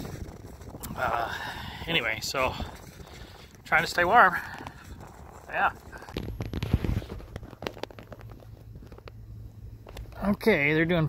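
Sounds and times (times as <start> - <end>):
footsteps crunching through snow: 0.0 - 9.0.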